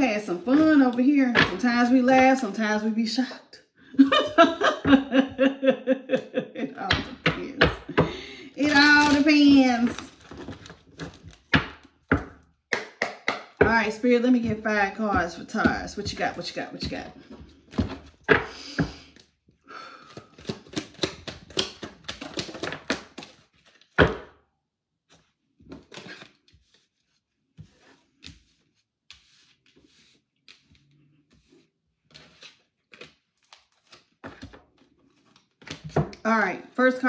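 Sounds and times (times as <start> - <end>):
cards being shuffled: 20.1 - 24.0, 25.1 - 35.8.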